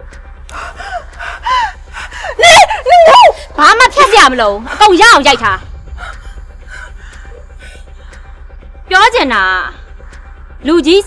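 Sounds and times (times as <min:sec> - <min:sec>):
woman crying out and gasping: 0:00.6 - 0:03.6.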